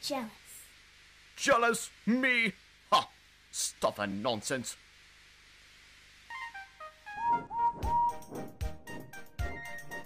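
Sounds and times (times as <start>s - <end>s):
jaunty tune with steady beat: 6.3s - 10.0s.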